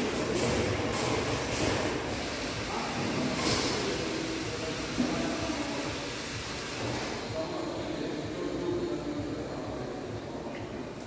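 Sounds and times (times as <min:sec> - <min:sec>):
mechanical rumble and hiss: 0:00.0 - 0:11.0.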